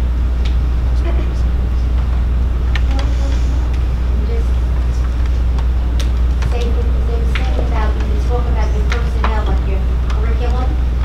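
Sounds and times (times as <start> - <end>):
low hum: 0.0 - 11.0
faint voices speaking: 0.9 - 11.0.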